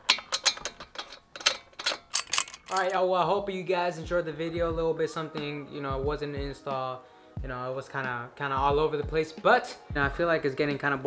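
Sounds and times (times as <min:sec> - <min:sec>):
ratchet wrench clicking: 0:00.1 - 0:03.0.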